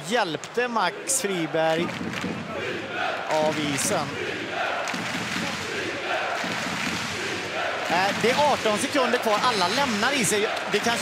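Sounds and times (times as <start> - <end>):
arena crowd hubbub: 0.0 - 11.0.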